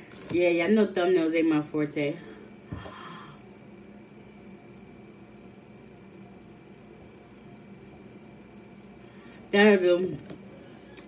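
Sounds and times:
light steady hum: 0:00.0 - 0:11.0.

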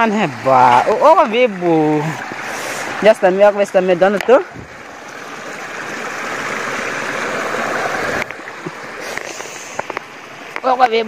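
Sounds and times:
water rushing and splashing: 0:00.0 - 0:11.0.

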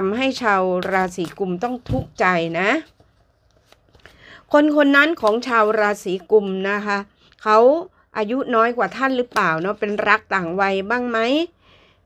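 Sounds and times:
woman speaking: 0:00.0 - 0:03.0, 0:04.5 - 0:11.6
cards being shuffled: 0:00.7 - 0:02.0.

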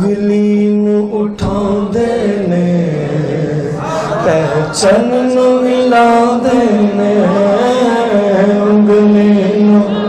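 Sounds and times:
man singing into microphone: 0:00.0 - 0:10.0.

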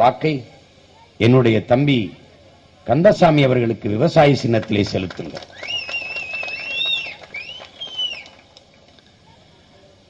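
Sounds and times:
low background hum: 0:00.0 - 0:10.0
person whistling: 0:05.5 - 0:08.3.

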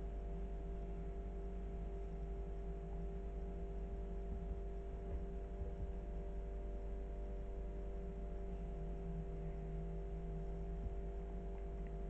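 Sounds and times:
low rumble: 0:00.0 - 0:12.0
steady low hum: 0:00.0 - 0:12.0.

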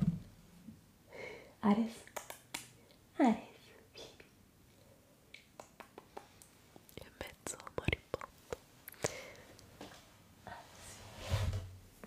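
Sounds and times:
person whispering closely: 0:06.9 - 0:08.4.

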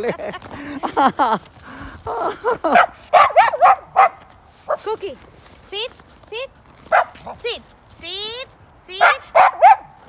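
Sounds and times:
dog barking: 0:02.7 - 0:04.2, 0:06.9 - 0:07.2, 0:09.0 - 0:09.9
woman calling: 0:07.4 - 0:09.5.

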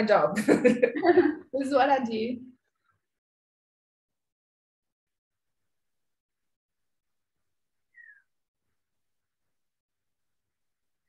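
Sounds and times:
high falling chirp: 0:07.9 - 0:08.4.

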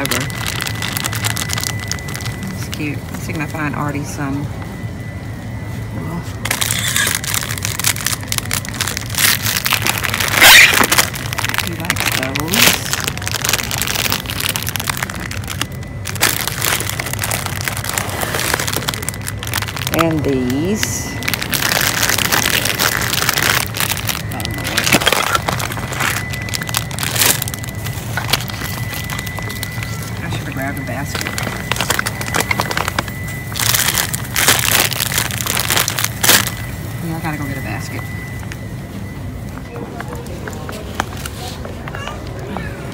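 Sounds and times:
rustling and crackling from handling: 0:00.0 - 0:02.8, 0:06.4 - 0:37.0
plastic snack bags crinkling: 0:00.0 - 0:03.8, 0:06.4 - 0:38.1
low steady hum: 0:00.0 - 0:42.9.

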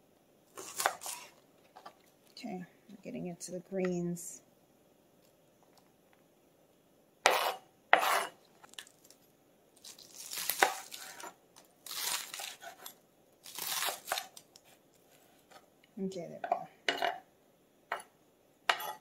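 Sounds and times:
knife cutting on plastic board: 0:00.6 - 0:01.3, 0:07.3 - 0:08.4, 0:10.5 - 0:11.4, 0:12.1 - 0:13.0.

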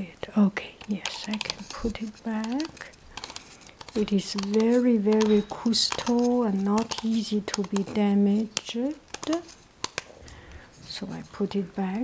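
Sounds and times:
plastic and ceramic parts clicking: 0:00.8 - 0:10.1.

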